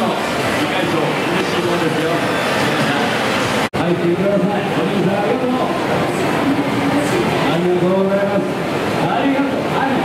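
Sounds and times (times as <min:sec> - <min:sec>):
background din of hall: 0:00.0 - 0:10.0
people talking indistinctly: 0:00.0 - 0:10.0.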